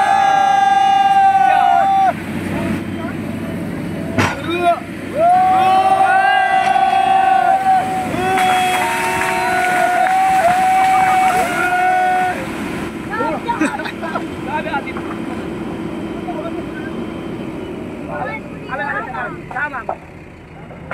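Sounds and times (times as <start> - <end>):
people shouting: 0.0 - 2.2, 4.5 - 13.4
excavator engine hum: 0.0 - 20.9.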